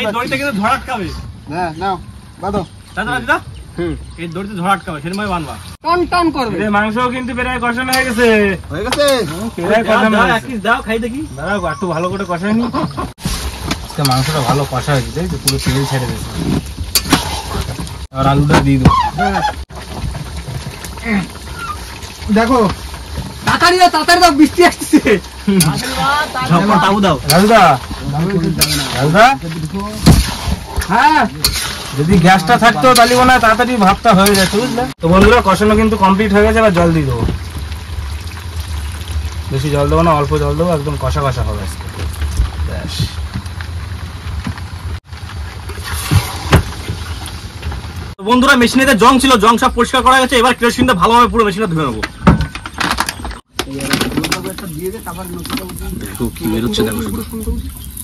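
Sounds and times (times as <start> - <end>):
voices talking: 0.0 - 13.2, 13.9 - 19.7, 20.9 - 37.4, 48.2 - 58.0
metal ladle scraping pan: 13.2 - 18.0, 25.2 - 34.9
hose spraying water on engine: 13.2 - 18.4, 19.7 - 48.2, 53.8 - 58.0.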